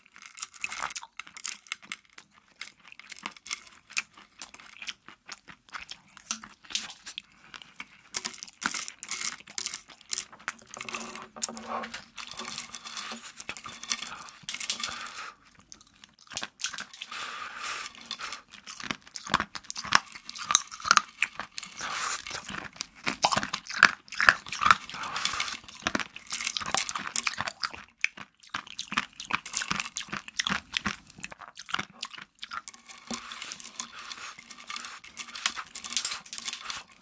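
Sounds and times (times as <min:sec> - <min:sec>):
crunching hard candy: 0:00.0 - 0:37.0.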